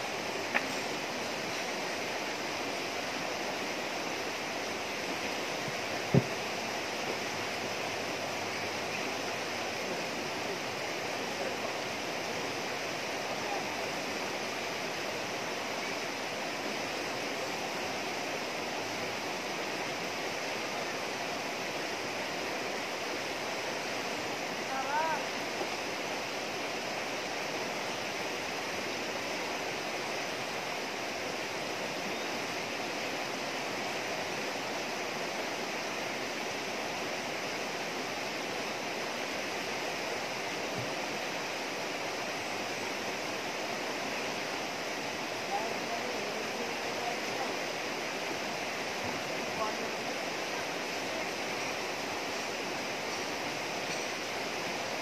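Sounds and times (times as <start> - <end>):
river rushing over rocks: 0.0 - 55.0.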